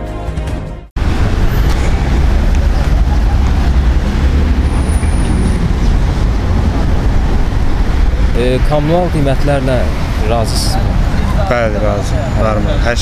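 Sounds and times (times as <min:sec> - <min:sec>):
rumble of passing vehicles: 0:01.0 - 0:13.0.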